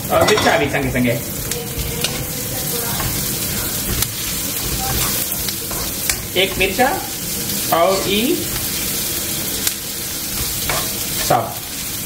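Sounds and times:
onions sizzling in hot oil: 0.0s - 12.0s
stirring in a wok: 0.2s - 12.0s.

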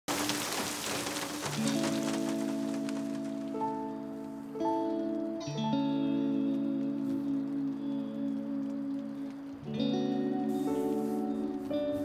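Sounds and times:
heavy rain: 0.1s - 4.5s, 6.3s - 12.0s
soft sustained music chords: 1.6s - 12.0s.

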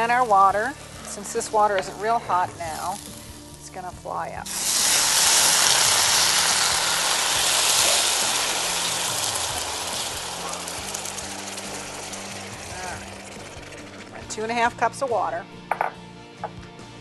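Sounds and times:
water hissing in hot pan: 0.0s - 14.7s.

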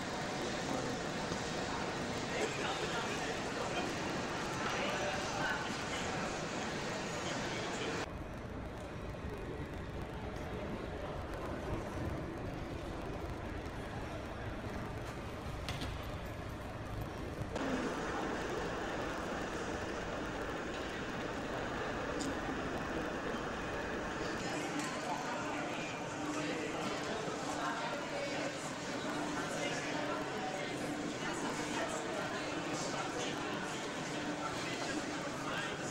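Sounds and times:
indistinct background voices: 17.6s - 35.9s.

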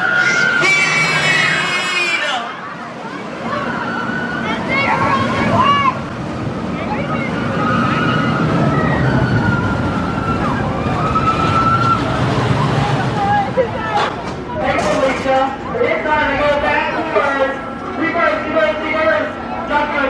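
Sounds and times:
roller coaster rumbling on track: 0.0s - 20.0s.

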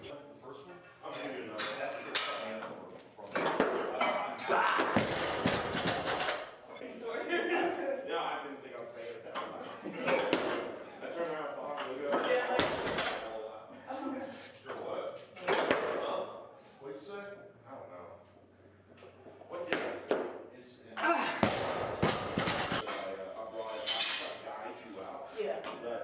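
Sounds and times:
barbell plates knocking and clanking: 21.5s - 23.0s.

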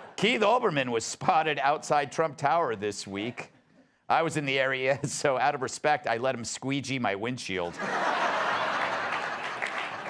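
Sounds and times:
audience applauding: 8.0s - 10.0s.

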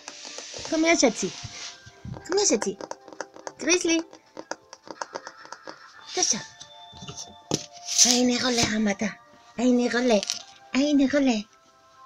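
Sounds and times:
hamster claws clicking on tiles: 0.0s - 1.3s, 2.1s - 6.3s.

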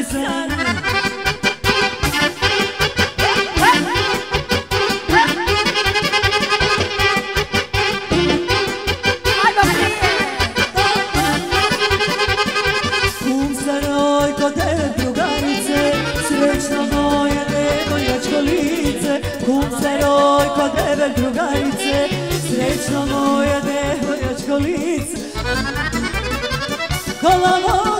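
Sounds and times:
folk band playing: 0.0s - 27.9s
accordion quick runs: 0.4s - 27.9s.

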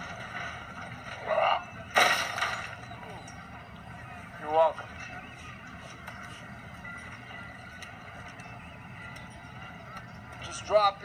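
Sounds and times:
dockside background noise: 0.0s - 11.0s.

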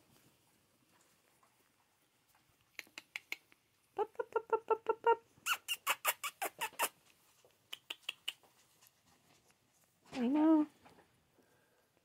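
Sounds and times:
puppies squeaking: 5.4s - 7.1s.

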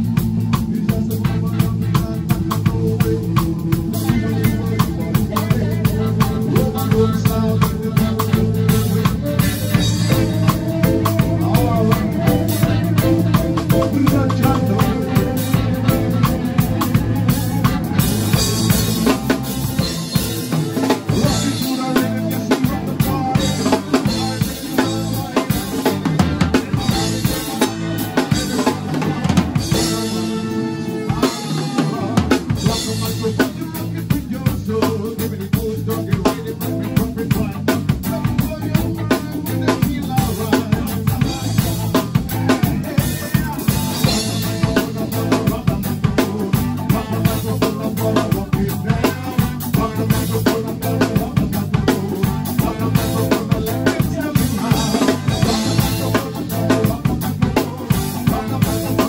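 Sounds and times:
drum kit steady beat: 0.0s - 59.0s
ska band playing: 0.0s - 59.0s.

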